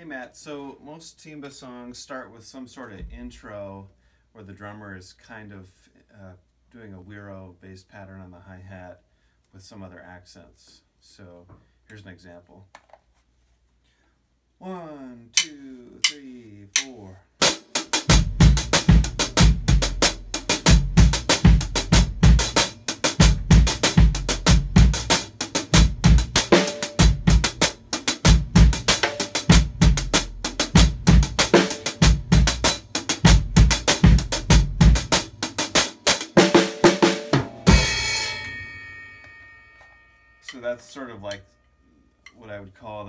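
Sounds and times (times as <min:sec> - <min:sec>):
drum kit groove: 0:15.3 - 0:39.2
cymbal crash: 0:37.4 - 0:40.5.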